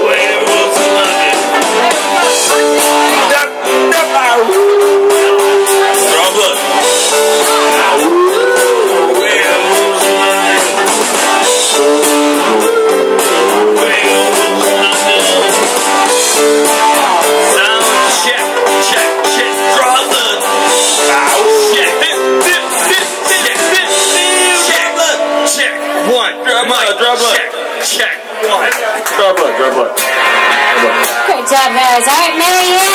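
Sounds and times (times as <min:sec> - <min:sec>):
men singing into microphones: 0:00.0 - 0:06.6, 0:07.4 - 0:25.8
karaoke backing track with guitar: 0:00.0 - 0:32.9.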